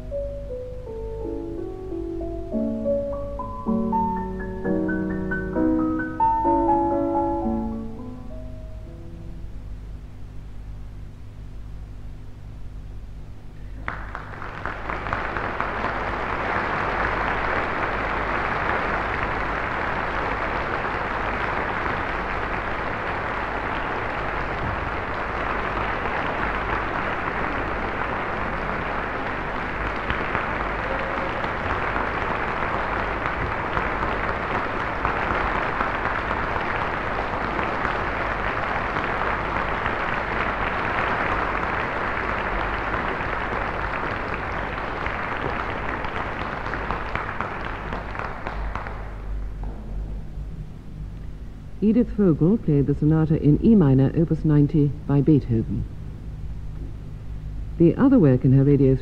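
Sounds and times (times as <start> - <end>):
audience applauding: 13.8 - 49.6.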